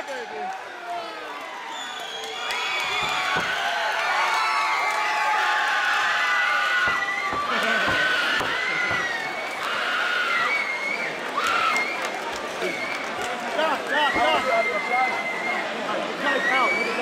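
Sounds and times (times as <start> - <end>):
crowd shouting: 2.4 - 17.0.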